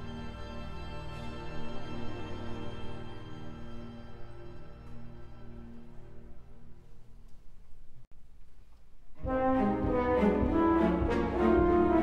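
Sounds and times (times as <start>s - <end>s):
soft low orchestral chord: 0.0s - 7.4s, 9.2s - 12.0s
faint hall ambience: 0.0s - 12.0s.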